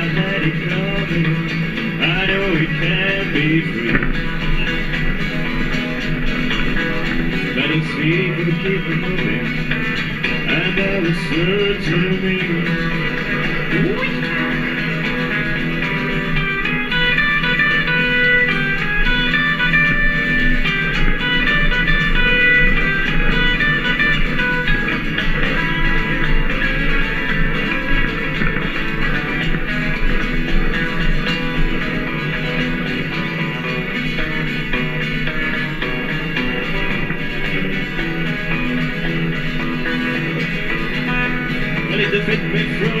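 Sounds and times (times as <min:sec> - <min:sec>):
electric guitar lead: 0:00.0 - 0:43.0
plucked double bass: 0:00.0 - 0:43.0
strummed acoustic guitar: 0:00.0 - 0:43.0.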